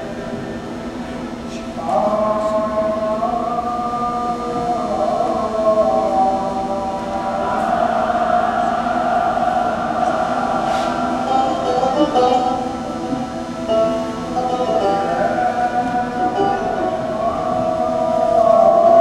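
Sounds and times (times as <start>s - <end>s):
worship music over loudspeakers: 0.0s - 19.0s.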